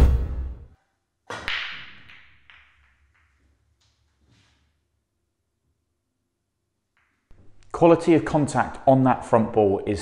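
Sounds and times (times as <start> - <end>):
cue ball cracking into pool balls: 1.3 - 4.0
pool balls clattering: 1.4 - 4.2.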